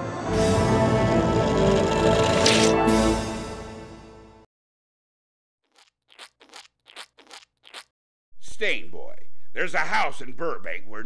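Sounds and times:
faint crunching: 5.7s - 7.9s.

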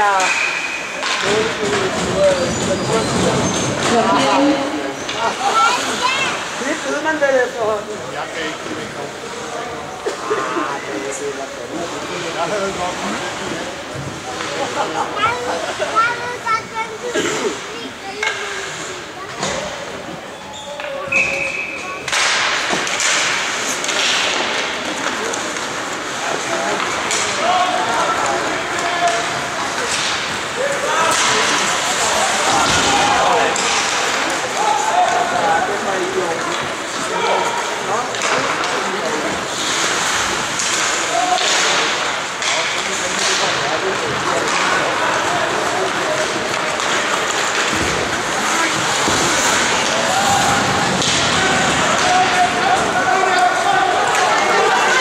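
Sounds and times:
knocks of sticks and puck: 0.2s - 4.0s, 18.2s - 19.7s, 20.8s - 55.0s
skates scraping on ice: 35.7s - 43.2s, 43.8s - 55.0s.

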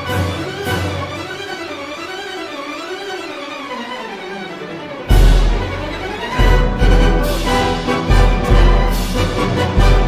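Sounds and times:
orchestral strings playing melody: 0.0s - 10.0s.

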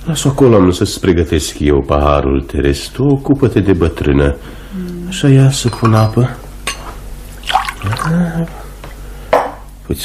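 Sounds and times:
person speaking: 7.8s - 8.6s.

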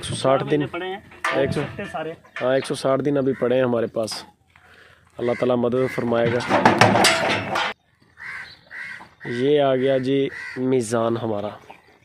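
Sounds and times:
crow cawing: 3.2s - 3.7s, 4.7s - 6.2s, 8.2s - 10.8s
bull clattering in metal crate: 6.0s - 7.8s.

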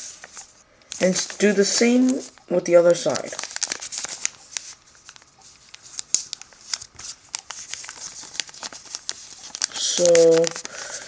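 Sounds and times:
paper being folded and creased: 0.0s - 2.4s, 3.1s - 11.0s.

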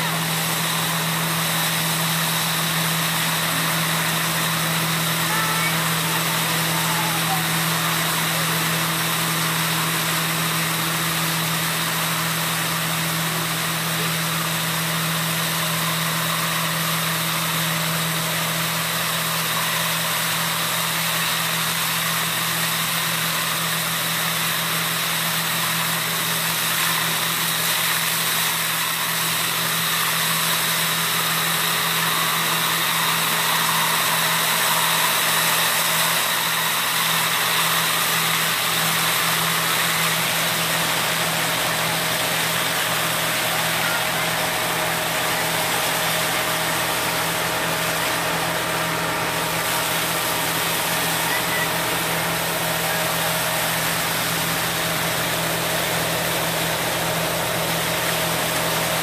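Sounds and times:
suction hoses rushing hiss: 0.0s - 59.0s
vacuum harvester droning: 0.0s - 59.0s.

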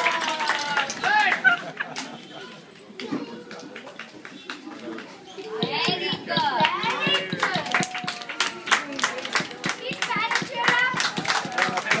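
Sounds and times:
audience clapping: 0.0s - 2.2s, 3.0s - 5.2s, 5.8s - 12.0s
voices talking: 0.7s - 12.0s.

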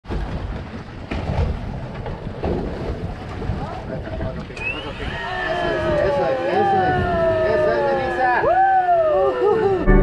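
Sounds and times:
water sloshing against boat hull: 0.0s - 8.9s
wind buffeting microphone: 0.0s - 9.9s.

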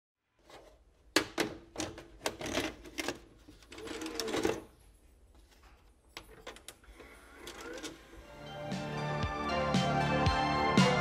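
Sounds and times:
mechanical clicks and clunks: 5.8s - 8.2s.

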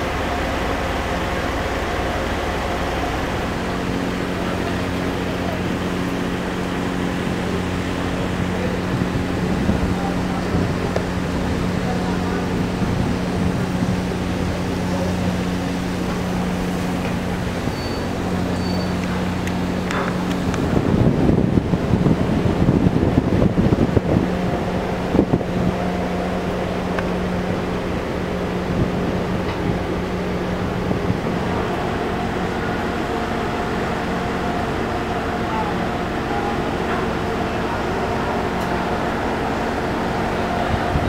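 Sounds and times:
ferry engines droning: 0.0s - 41.0s
rough rush of noise: 0.0s - 41.0s.

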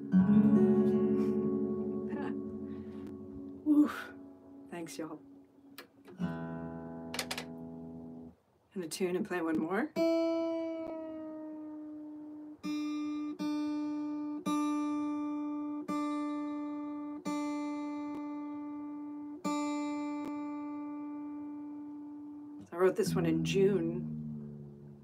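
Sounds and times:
acoustic guitar string plucked: 0.0s - 8.3s, 9.4s - 25.0s.

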